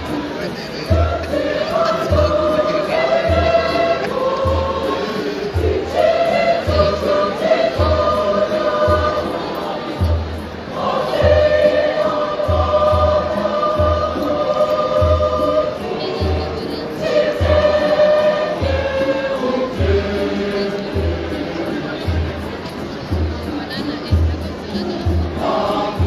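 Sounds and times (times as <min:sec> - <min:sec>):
choir singing a hymn: 0:00.0 - 0:24.0, 0:24.7 - 0:26.0
low drum beat: 0:00.0 - 0:26.0.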